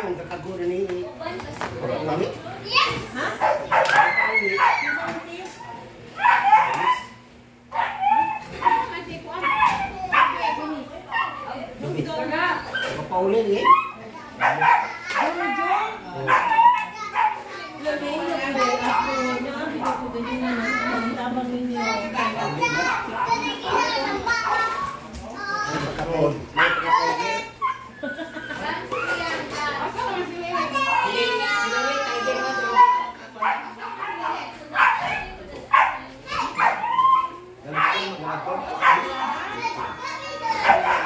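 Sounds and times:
children's voices: 13.8s - 26.0s, 26.7s - 38.6s, 39.2s - 41.0s.

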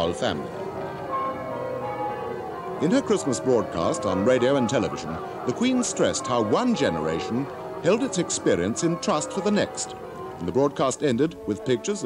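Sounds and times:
church bells ringing: 0.0s - 12.0s.

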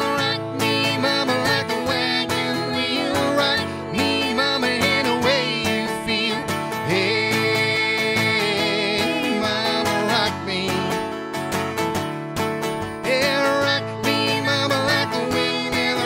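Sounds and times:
man and woman singing: 0.0s - 11.1s, 13.0s - 16.0s
acoustic guitar strumming: 0.0s - 16.0s.

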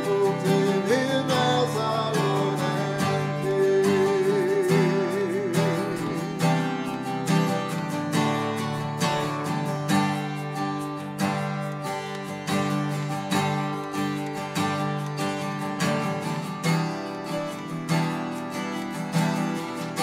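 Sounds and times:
acoustic guitars strumming chords: 0.0s - 20.0s.

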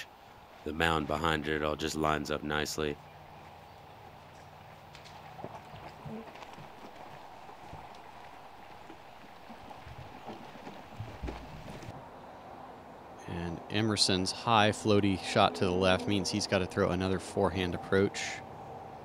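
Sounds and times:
faint outdoor ambience: 0.0s - 19.0s.

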